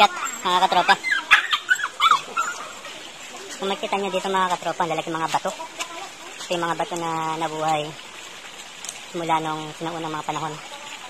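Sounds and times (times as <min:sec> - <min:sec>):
animal yelps or whimpers: 0:00.0 - 0:03.0.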